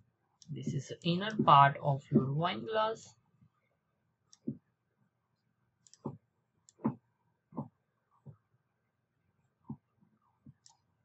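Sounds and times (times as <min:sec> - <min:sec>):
soft computer mouse clicks: 0:05.8 - 0:07.0, 0:10.4 - 0:10.9.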